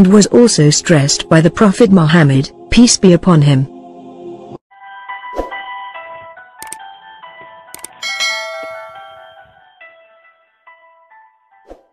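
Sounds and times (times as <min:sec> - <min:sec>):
background music with held tones: 0:00.0 - 0:11.9
bright bell chime: 0:08.0 - 0:09.8.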